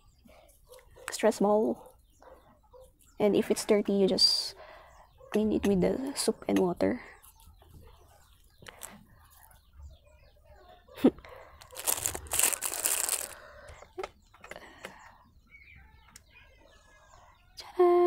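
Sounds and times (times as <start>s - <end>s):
plastic packaging crinkling: 11.6s - 13.5s.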